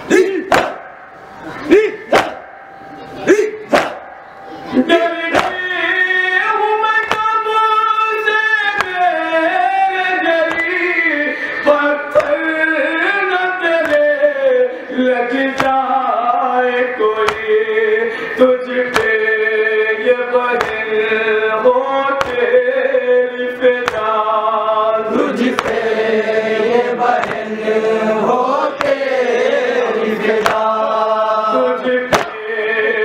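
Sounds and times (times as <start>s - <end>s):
man chanting a lament: 0.0s - 0.8s, 1.5s - 2.4s, 3.2s - 33.0s
hands slapping chests: 0.5s - 0.9s, 2.1s - 2.5s, 3.7s - 4.1s, 5.4s - 5.6s, 27.2s - 27.5s, 28.8s - 29.0s, 30.4s - 30.7s, 32.1s - 32.4s.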